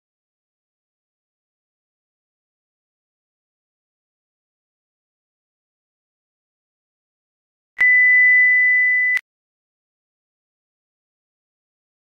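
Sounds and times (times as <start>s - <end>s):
high-pitched test tone beep: 7.8s - 9.2s.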